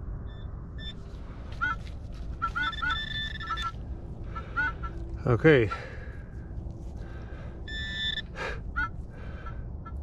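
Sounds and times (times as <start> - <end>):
faint bird calls: 0.3 - 10.0.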